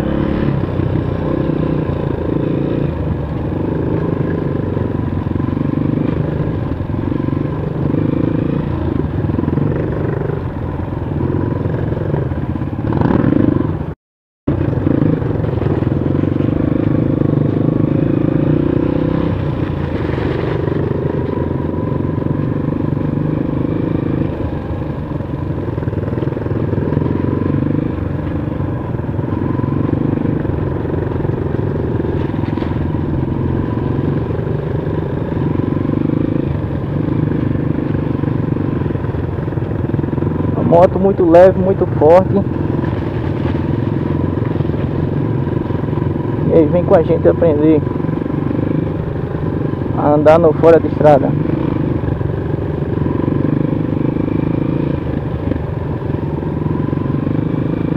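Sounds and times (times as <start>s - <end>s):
dirt bike engine revving: 0.0s - 10.5s, 11.1s - 13.8s, 14.5s - 57.9s.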